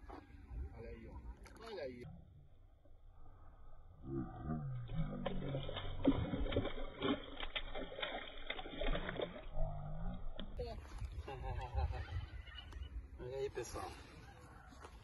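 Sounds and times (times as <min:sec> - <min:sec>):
fish splashing at surface: 0:05.1 - 0:10.6.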